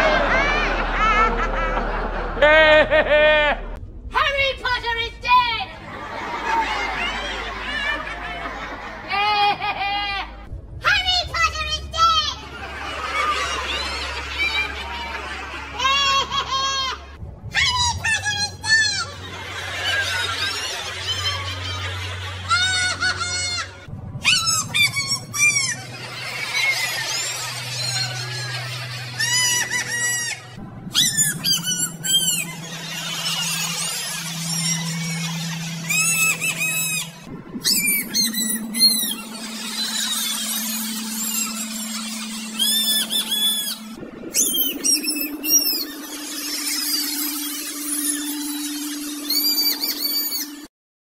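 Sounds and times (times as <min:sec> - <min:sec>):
high-pitched cackling laugh: 0:00.0 - 0:03.7, 0:05.8 - 0:10.4, 0:12.4 - 0:17.1, 0:19.0 - 0:50.6
low hum stepping up in pitch: 0:17.2 - 0:50.7.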